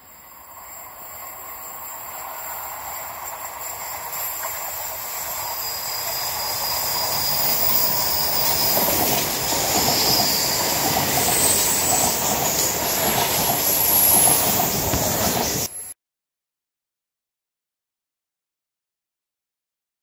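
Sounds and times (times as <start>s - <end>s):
high-pitched wheel squeals: 0.0s - 15.9s
train wheels on rails: 0.0s - 15.9s.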